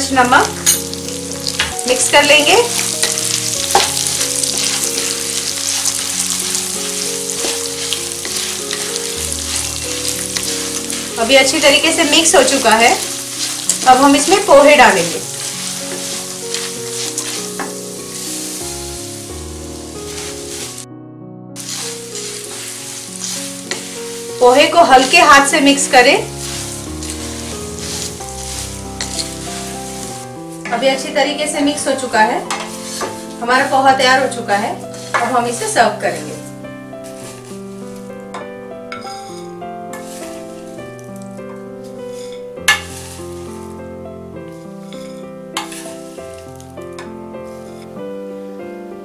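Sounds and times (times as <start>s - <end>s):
food sizzling in hot oil: 0.0s - 20.8s, 21.6s - 38.3s, 38.9s - 43.8s, 44.5s - 46.8s
soft background music: 0.0s - 49.0s
wooden spatula scraping: 0.7s - 20.8s, 21.6s - 30.8s, 32.5s - 33.6s, 34.8s - 38.1s, 39.0s - 43.8s, 44.4s - 48.0s.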